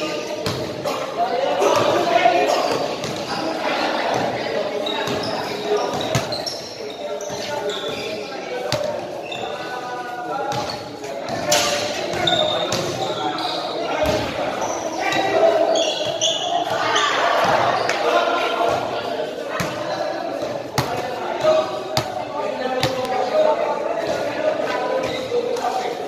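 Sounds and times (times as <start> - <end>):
people talking and calling out: 0.0 - 26.0.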